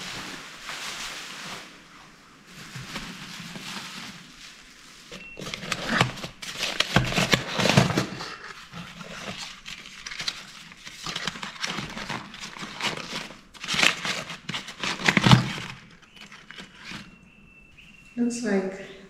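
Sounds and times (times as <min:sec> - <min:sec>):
bubble wrap and paper crinkling: 0:00.0 - 0:17.9.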